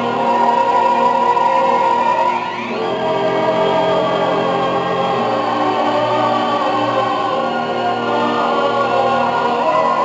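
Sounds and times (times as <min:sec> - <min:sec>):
orchestral music on record player: 0:00.0 - 0:10.0.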